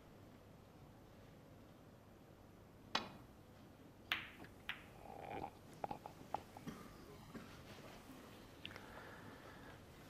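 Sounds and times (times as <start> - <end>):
snooker balls clicking: 2.9 - 3.3, 4.1 - 6.6.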